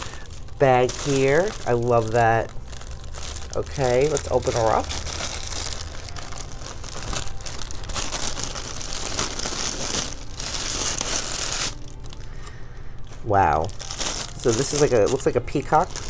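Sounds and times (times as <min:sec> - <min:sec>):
paper and plastic crinkling: 0:00.0 - 0:16.0.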